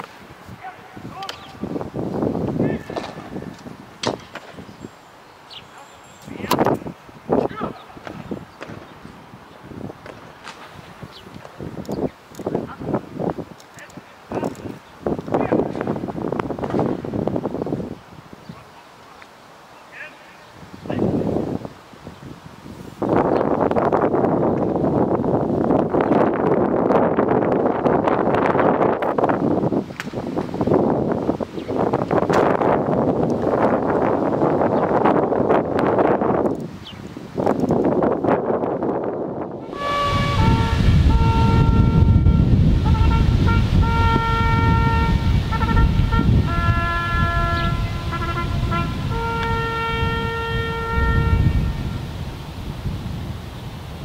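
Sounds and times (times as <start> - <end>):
wind on microphone: 0.0 - 18.8, 20.0 - 54.0
brass band playing slow chords: 39.6 - 52.0.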